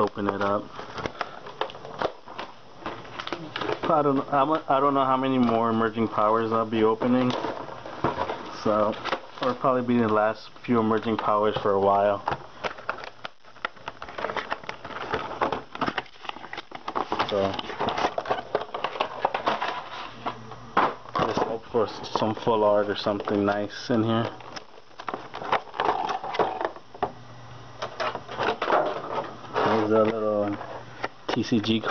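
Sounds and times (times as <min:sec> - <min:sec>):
packaging crackling and rustling: 0:00.0 - 0:20.3, 0:21.2 - 0:26.9.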